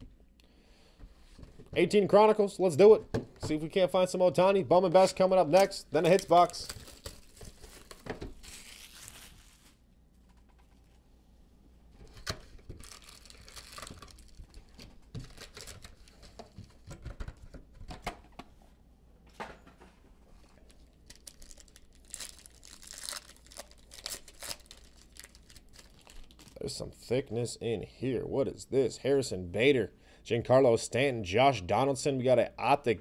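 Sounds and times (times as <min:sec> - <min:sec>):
card pack wrappers crinkling: 0:05.0 - 0:09.8, 0:12.1 - 0:17.2, 0:20.6 - 0:26.6
wrappers tearing: 0:05.4 - 0:09.8, 0:12.2 - 0:16.4, 0:20.6 - 0:26.6.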